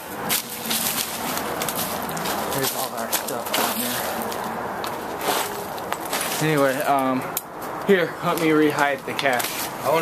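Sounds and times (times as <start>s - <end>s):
footsteps crunching on gravel: 0.0s - 10.0s
steady rushing background noise: 0.0s - 10.0s.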